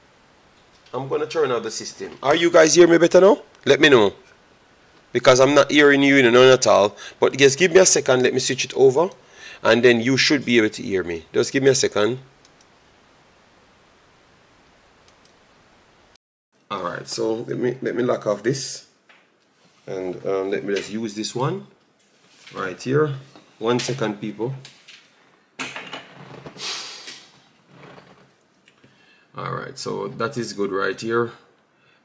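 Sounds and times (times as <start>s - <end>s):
low background hiss: 0.0s - 32.0s
man speaking: 0.9s - 4.3s, 5.1s - 12.3s, 16.7s - 18.9s, 19.9s - 21.7s, 22.5s - 24.6s, 29.4s - 31.5s
faint clicks: 12.4s - 12.8s, 15.0s - 15.4s.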